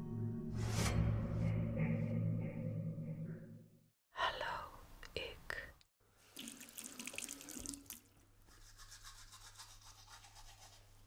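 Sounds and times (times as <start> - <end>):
toothbrush scrubbing teeth: 6.4 - 11.0.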